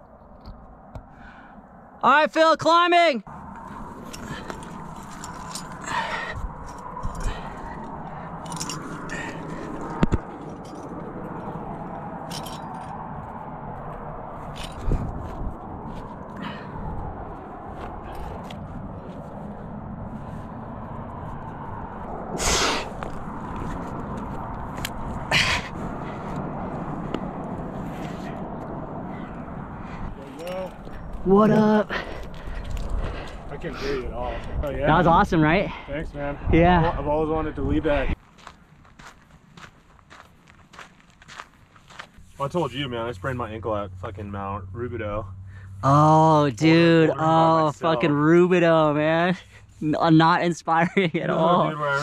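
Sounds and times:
steady rushing background: 3.3s - 36.6s
climbing gear clinking: 4.0s - 11.6s, 12.2s - 13.0s, 14.4s - 15.1s, 30.2s - 33.5s.

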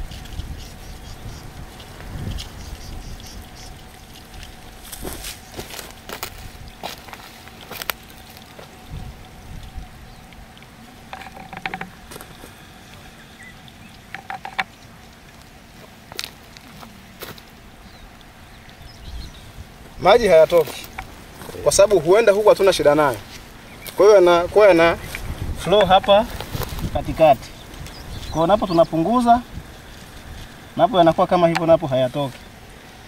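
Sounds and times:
faint calls: 0.0s - 32.9s
light clicks and knocks: 11.1s - 12.4s
plastic tubing being handled: 11.1s - 12.5s.

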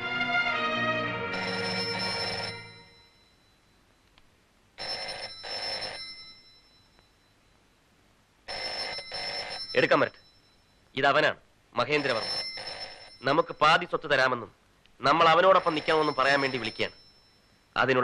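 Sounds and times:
film score music: 0.0s - 2.0s
telephone double ring: 1.4s - 3.4s, 4.8s - 7.0s, 8.5s - 10.7s, 12.0s - 13.6s, 15.6s - 17.6s.

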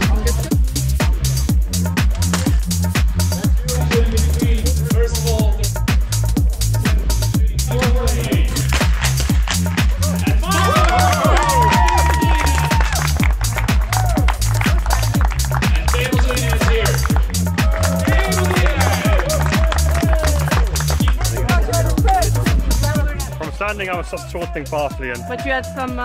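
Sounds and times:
electronic music with fast beat: 0.0s - 26.0s.

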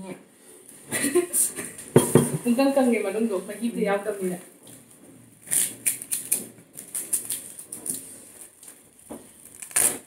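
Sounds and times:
dried seaweed sheets crackling: 4.8s - 10.0s.

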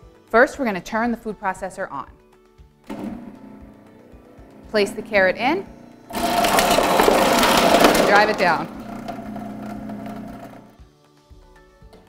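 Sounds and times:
food processor motor humming: 2.9s - 10.8s.

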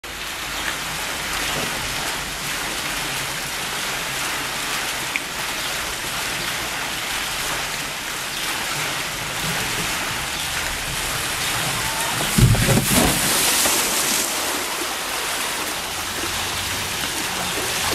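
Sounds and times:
water running down a slide: 0.1s - 17.9s.

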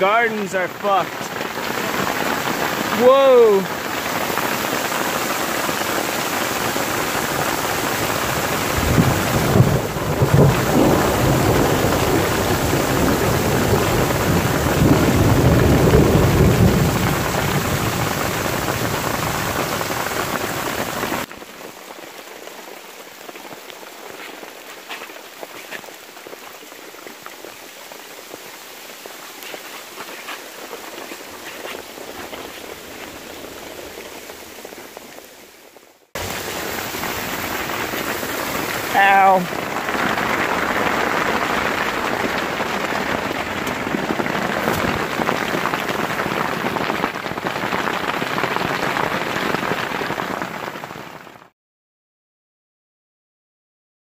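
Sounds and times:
heavy hail and rain on trees: 0.0s - 51.5s
quiet rain patter with ticks: 0.0s - 51.5s
low rumble of thunder: 8.5s - 19.6s.

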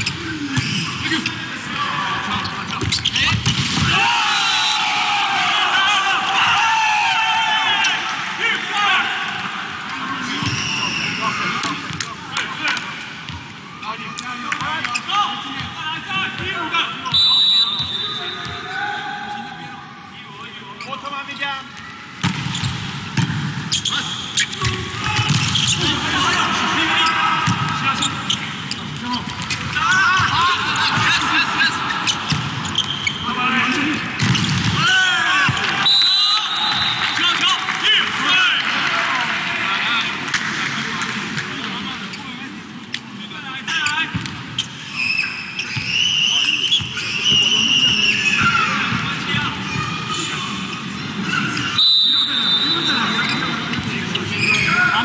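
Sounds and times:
crowd voices and shouts: 0.0s - 55.0s
referee's whistle: 10.4s - 11.3s, 17.0s - 18.8s, 35.8s - 37.4s, 44.9s - 48.6s, 51.7s - 53.6s.

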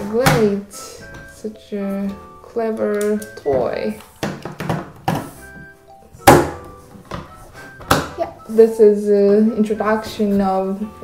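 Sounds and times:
plastic book knocks and clacks: 3.0s - 5.3s, 6.2s - 8.2s.

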